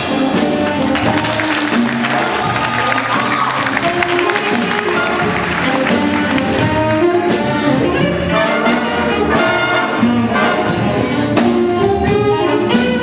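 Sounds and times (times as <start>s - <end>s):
jazz band playing: 0.0s - 13.0s.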